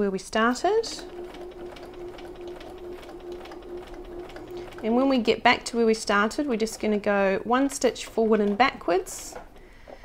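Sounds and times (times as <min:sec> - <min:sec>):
sewing machine stitching: 0:00.8 - 0:10.0.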